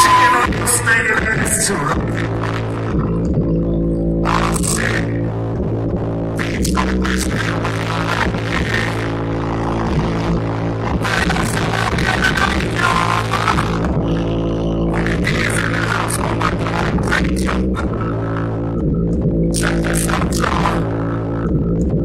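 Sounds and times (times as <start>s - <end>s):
bass-heavy hip-hop beat: 0.0s - 22.0s
rapping into a microphone: 0.0s - 22.0s.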